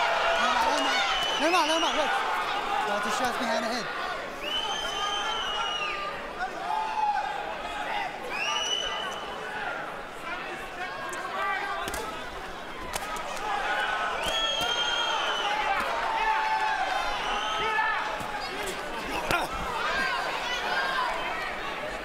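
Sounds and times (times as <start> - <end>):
arena crowd: 0.0 - 22.0.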